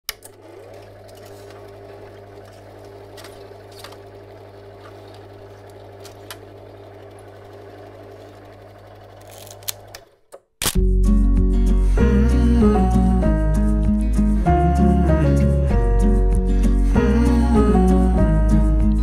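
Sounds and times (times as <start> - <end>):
film projector whirring: 0.1 - 10.2.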